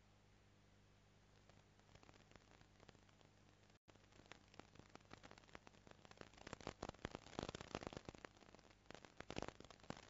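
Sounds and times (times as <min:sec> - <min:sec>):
low steady hum: 0:00.0 - 0:10.0
faint irregular crackling: 0:01.1 - 0:10.0.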